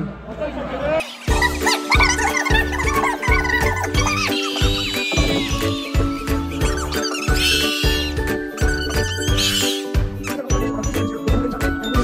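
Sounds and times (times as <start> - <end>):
high squeaky chirps: 1.1 - 10.5
music with deep beat: 1.3 - 12.0.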